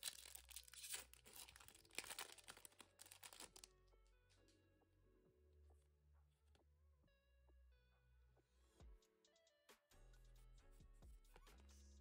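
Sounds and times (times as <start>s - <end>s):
foil wrapper tearing and crinkling: 0.0s - 3.7s.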